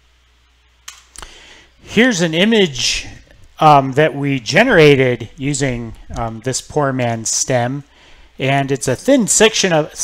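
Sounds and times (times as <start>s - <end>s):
faint room hiss: 0.0s - 10.0s
man speaking: 1.8s - 10.0s.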